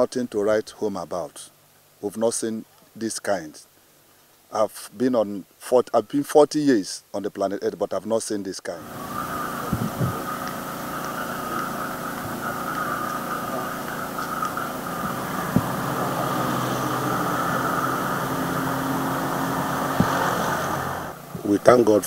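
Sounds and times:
engine humming with hiss: 8.7 - 22.0.

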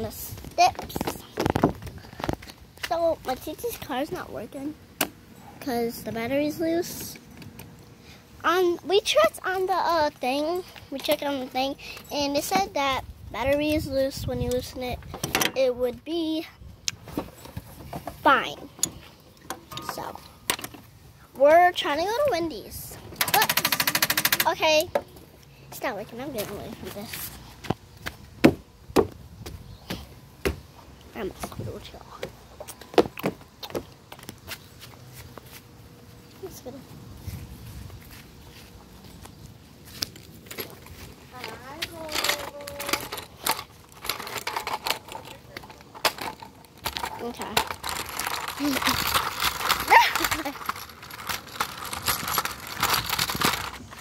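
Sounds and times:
phone microphone handling noise: 0.3 - 2.6.

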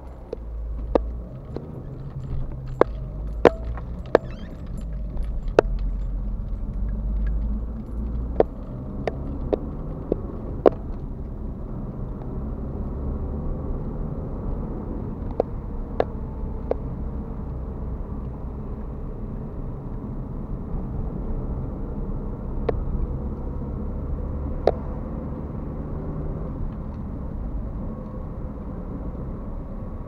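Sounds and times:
sharp ticks or rattles: 0.0 - 10.9
road and engine rumble: 0.0 - 30.0.

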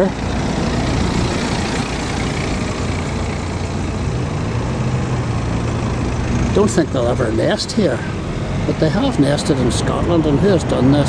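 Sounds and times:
low engine hum: 0.0 - 11.0
vehicle engine and tyre noise: 0.0 - 11.0.

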